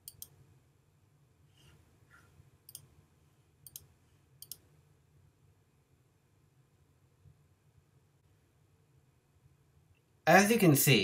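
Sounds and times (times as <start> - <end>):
computer mouse clicks: 0.0 - 0.4, 2.7 - 2.9, 3.6 - 4.7
faint low hum: 0.0 - 11.0.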